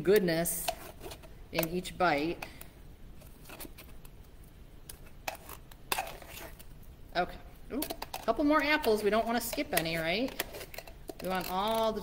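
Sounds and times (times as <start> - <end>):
utensil scraping inside tin can: 0.5 - 1.8, 5.0 - 6.7, 7.9 - 12.0.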